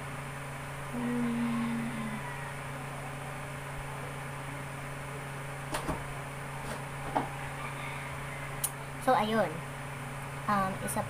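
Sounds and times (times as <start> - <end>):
electrical fan hum: 0.0 - 11.0.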